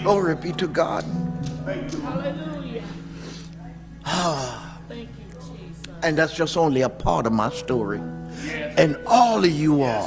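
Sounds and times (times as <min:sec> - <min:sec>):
soft background music: 0:00.0 - 0:10.0
man gasping cry: 0:04.1 - 0:04.8.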